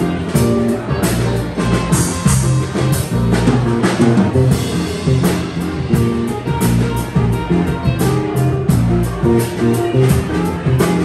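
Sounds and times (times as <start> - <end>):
big band playing: 0.0 - 11.0.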